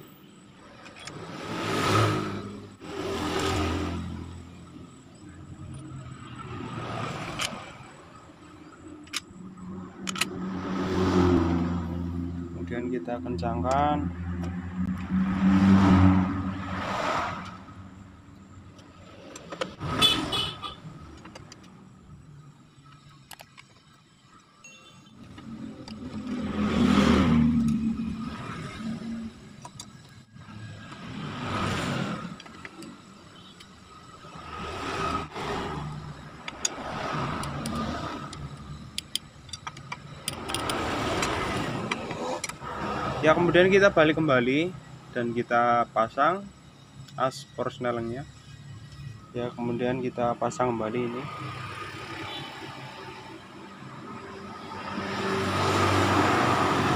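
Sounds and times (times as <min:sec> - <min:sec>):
road vehicles passing: 0:00.0 - 0:56.9
socket wrench clicking: 0:09.0 - 0:09.4, 0:10.0 - 0:10.4, 0:36.4 - 0:42.6.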